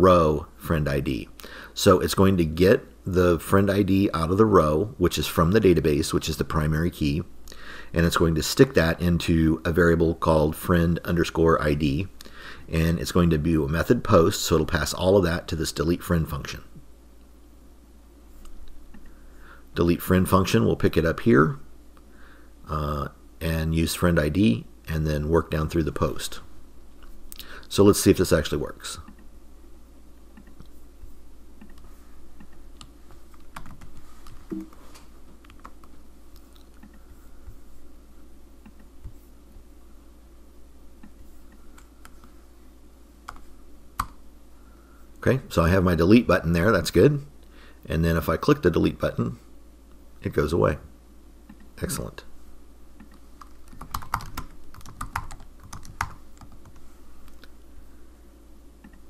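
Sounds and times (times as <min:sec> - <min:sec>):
faint low hum: 0:00.0 - 0:59.0
typing on a computer keyboard: 0:32.8 - 0:33.9, 0:53.4 - 0:56.8.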